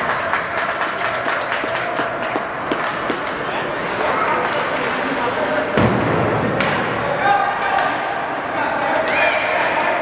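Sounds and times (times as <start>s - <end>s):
hockey sticks clicking: 0.0s - 5.6s
crowd hubbub: 0.0s - 10.0s
skates scraping ice: 0.1s - 5.8s.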